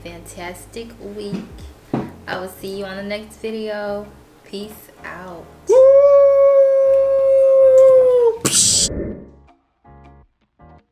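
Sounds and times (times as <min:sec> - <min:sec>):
faint music: 0:00.0 - 0:08.8.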